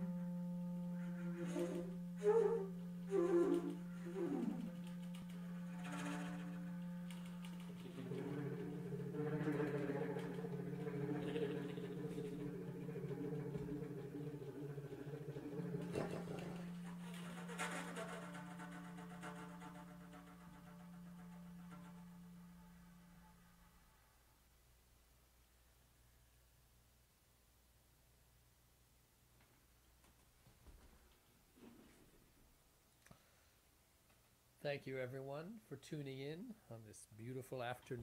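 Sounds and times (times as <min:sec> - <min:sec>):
thicker layered tone: 0:00.0 - 0:18.6
clarinet and flute low drone: 0:00.0 - 0:24.2
rushes of airy noise: 0:07.9 - 0:16.8.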